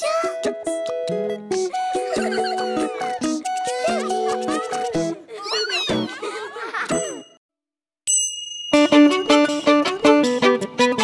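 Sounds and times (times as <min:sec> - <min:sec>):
high playful cartoon vocal sounds: 0:01.6 - 0:06.2.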